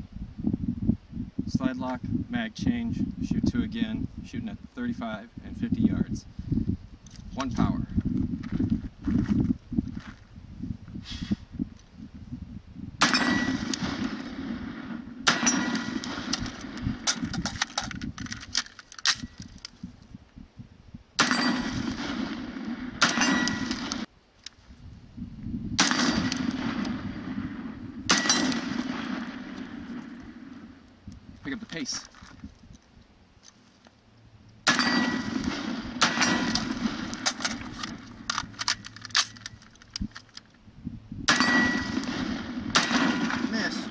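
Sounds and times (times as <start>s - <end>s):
metallic ringing of steel targets: 13.0s - 17.2s, 21.2s - 24.1s, 28.1s - 29.6s, 34.6s - 39.4s, 41.3s - 43.9s
rifle gunshots: 13.0s - 17.5s, 21.2s - 24.1s, 25.8s - 30.8s, 34.6s - 38.8s, 41.3s - 43.9s.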